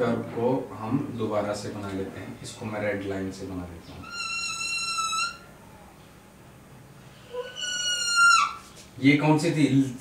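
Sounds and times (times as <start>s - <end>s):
whiteboard marker squeaking: 4.0s - 5.4s, 7.4s - 8.9s.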